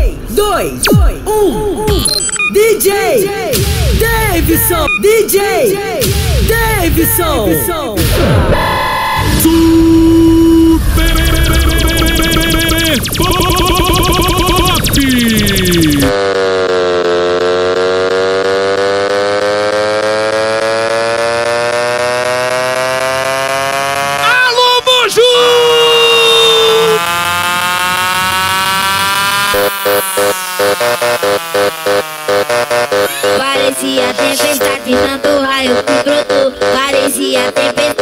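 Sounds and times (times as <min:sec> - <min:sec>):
fast chopped stutter: 0:00.8 - 0:08.5, 0:09.2 - 0:24.6, 0:25.4 - 0:38.0
sharp effects hit: 0:03.5 - 0:05.0, 0:06.0 - 0:17.2
synth riser climbing in pitch: 0:06.0 - 0:24.3, 0:25.8 - 0:37.1.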